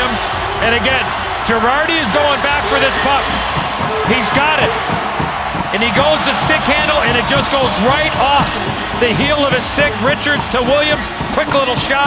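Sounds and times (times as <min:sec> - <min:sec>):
arena crowd noise: 0:00.0 - 0:12.0
commentator talking: 0:00.0 - 0:12.0.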